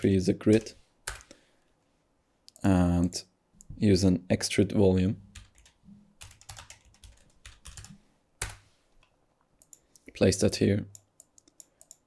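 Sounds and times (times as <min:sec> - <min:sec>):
keyboard typing: 0:00.5 - 0:01.3, 0:05.3 - 0:08.6, 0:10.9 - 0:12.0.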